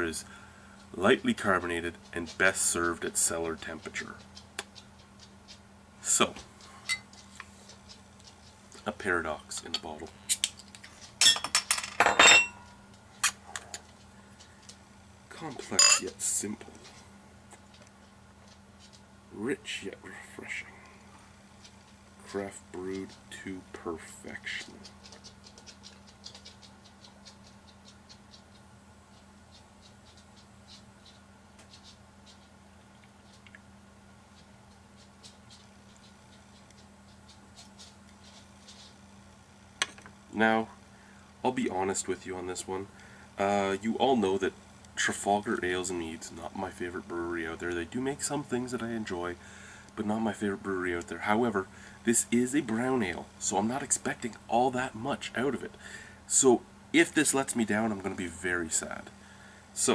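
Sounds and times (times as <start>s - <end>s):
glass bottle clink: 11.2s - 12.6s, 15.8s - 16.0s.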